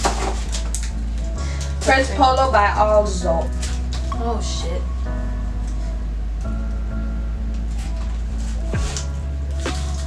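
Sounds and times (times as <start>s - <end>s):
wrapper crackling: 0.0s - 2.0s
background music: 0.0s - 10.0s.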